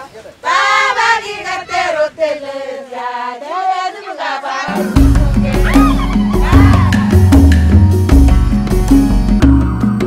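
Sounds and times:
women singing together: 0.4 - 7.3.

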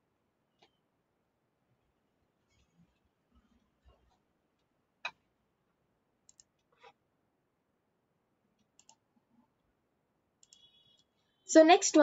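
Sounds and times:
short clicks: 8.6 - 9.0, 10.4 - 11.1.

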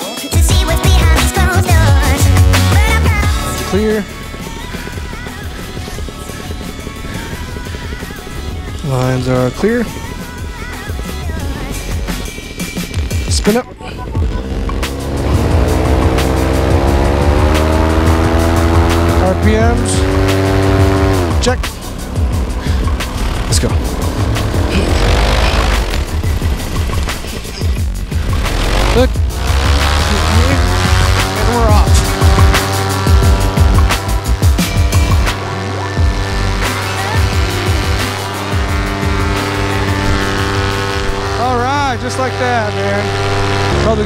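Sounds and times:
paramotor engine at high throttle: 0.4 - 44.0.

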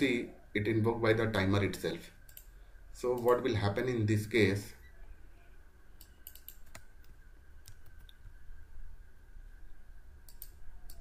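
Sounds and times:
faint high whine: 0.0 - 11.0
keyboard and mouse clicks: 2.3 - 2.5, 3.1 - 3.5, 6.0 - 8.3, 10.2 - 11.0.

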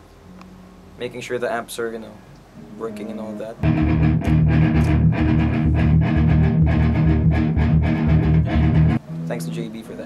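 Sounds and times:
electric guitar strumming: 3.6 - 9.9.

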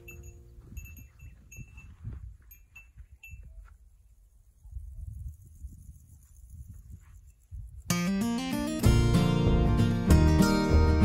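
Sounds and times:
high chime-like tinkles: 0.0 - 3.6
wind rumble on microphone: 0.0 - 7.9.

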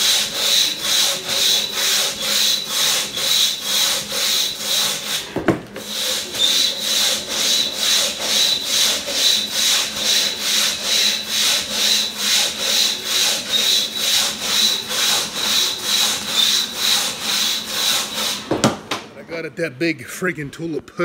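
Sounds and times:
crosscut saw rasping through log: 0.0 - 18.5.

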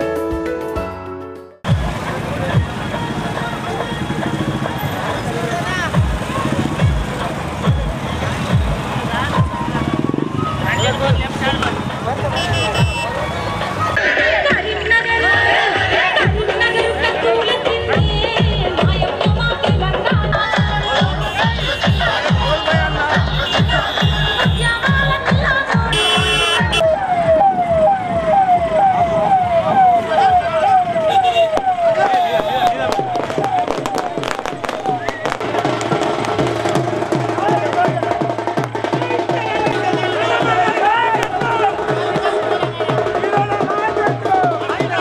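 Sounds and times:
motorcycle engines revving: 1.7 - 45.0
people's voices: 1.7 - 45.0
music with steady beat: 5.8 - 9.7, 14.0 - 26.8, 32.8 - 45.0
yelping police siren: 9.3 - 11.1, 26.6 - 35.4.

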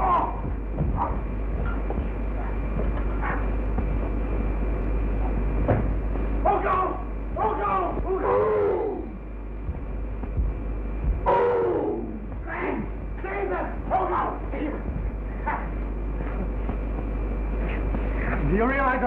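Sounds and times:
soundtrack hiss and hum: 0.0 - 19.0
wordless vocal cries: 6.5 - 9.2, 11.2 - 14.8.

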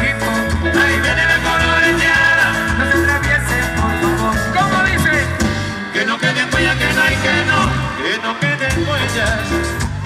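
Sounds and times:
live salsa band playing: 0.0 - 10.0.

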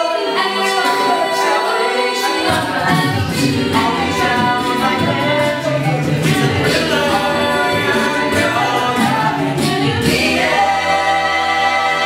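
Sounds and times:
a cappella group singing: 0.0 - 12.0.

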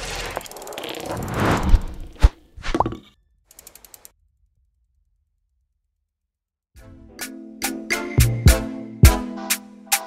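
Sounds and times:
whoosh: 1.0 - 2.4.

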